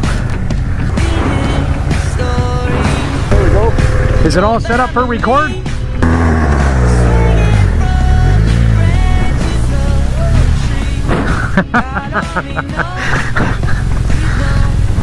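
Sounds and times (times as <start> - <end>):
motorcycle engine revving: 0.0 - 11.6
background music: 0.0 - 15.0.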